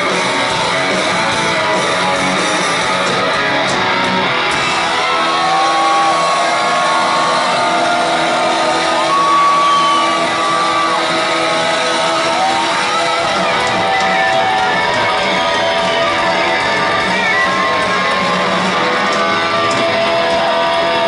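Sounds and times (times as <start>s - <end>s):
hard rock band playing live: 0.0s - 21.0s.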